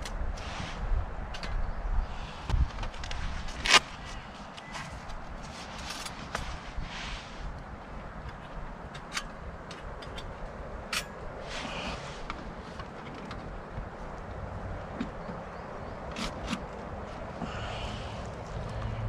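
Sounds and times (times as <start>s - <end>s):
rustles and scrapes: 0.0s - 14.2s.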